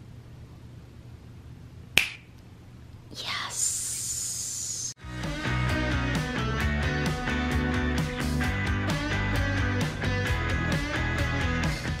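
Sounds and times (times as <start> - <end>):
finger snap: 2.0 - 2.5.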